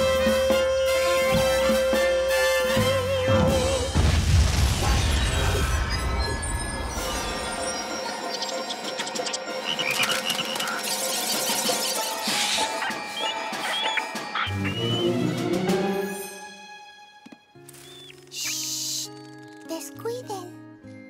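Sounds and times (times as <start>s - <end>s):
orchestral background music: 0.0s - 21.0s.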